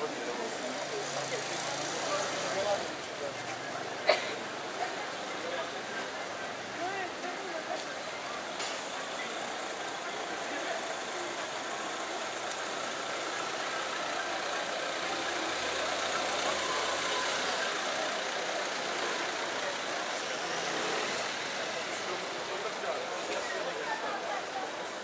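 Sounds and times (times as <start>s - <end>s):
car engines running: 0.0s - 25.0s
pedestrians chattering: 0.0s - 25.0s.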